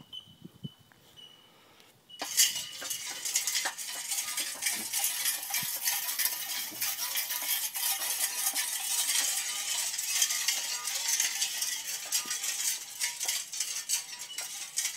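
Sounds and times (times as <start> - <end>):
spinning barrel rain-like patter: 2.2 - 14.9.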